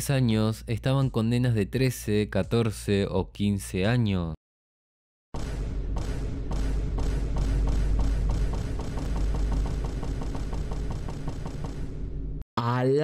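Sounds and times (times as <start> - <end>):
dark tense music: 5.4 - 12.4.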